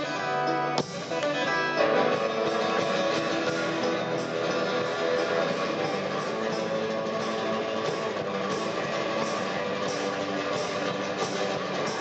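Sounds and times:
electric guitar: 0.0 - 12.0
live band music: 0.0 - 12.0
strummed acoustic guitar: 0.0 - 12.0.

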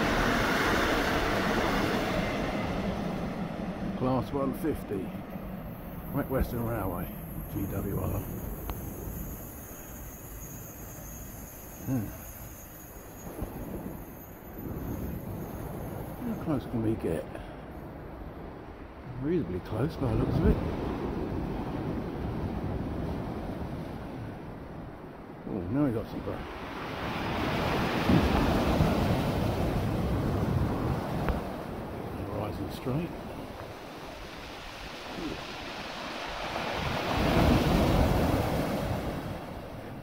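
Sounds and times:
sea washing against wall: 0.0 - 4.6, 26.7 - 31.8, 32.5 - 39.8
wind: 0.0 - 40.0.

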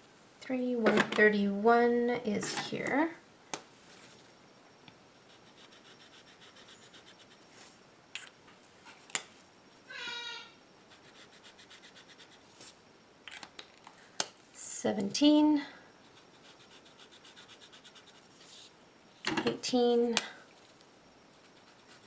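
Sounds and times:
marker rubbing on paper: 16.2 - 18.7.

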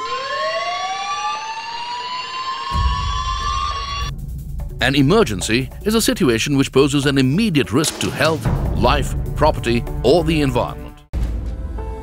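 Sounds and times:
siren winding up: 0.0 - 4.1.

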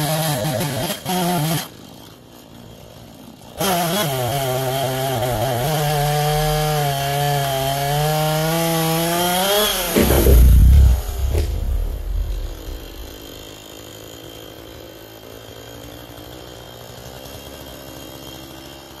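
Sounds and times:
chainsaw cutting tree trunk: 0.0 - 19.0
tree crashing down: 9.2 - 13.4
branches crackling: 9.6 - 13.4.

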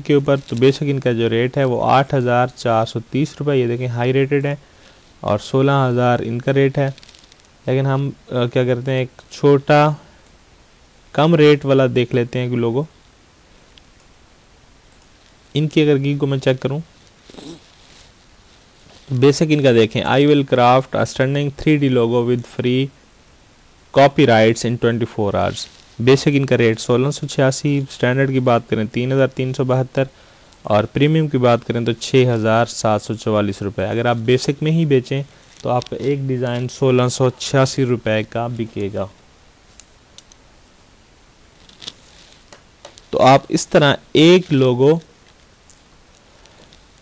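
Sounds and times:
low background hiss: 0.0 - 47.0
person narrating: 30.7 - 39.1, 43.1 - 45.1.

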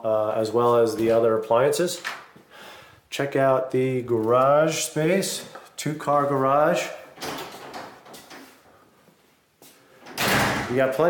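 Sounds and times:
door pushed open: 10.1 - 10.8.

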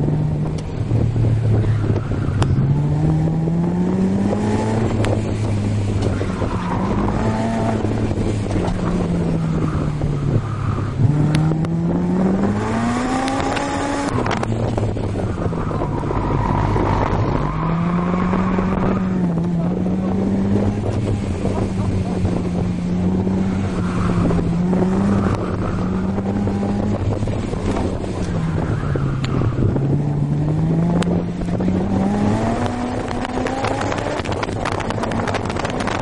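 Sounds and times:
car engine accelerating: 0.0 - 36.0
wind noise on microphone: 0.0 - 36.0.

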